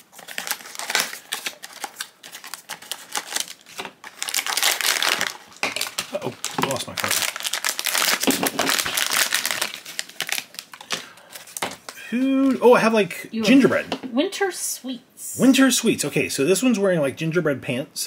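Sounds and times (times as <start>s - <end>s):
foil bag crinkling and tearing: 0.0s - 11.9s
plastic wrapping rustling: 0.0s - 12.8s.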